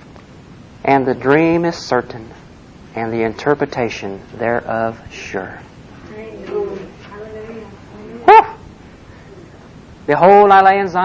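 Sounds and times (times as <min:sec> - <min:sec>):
high-pitched yelp: 0:08.1 - 0:08.6.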